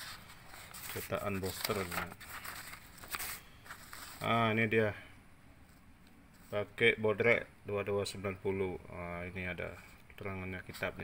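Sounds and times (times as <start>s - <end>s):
paper pages rustling: 0.0s - 4.4s.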